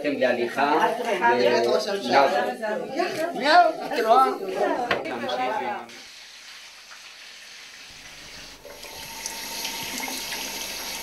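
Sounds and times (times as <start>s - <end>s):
tap water running into sink: 5.9s - 11.0s.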